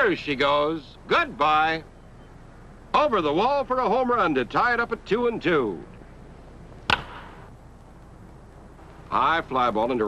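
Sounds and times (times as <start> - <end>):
faint steady hiss: 0.0 - 10.0
wooden bat hitting ball: 6.8 - 7.4.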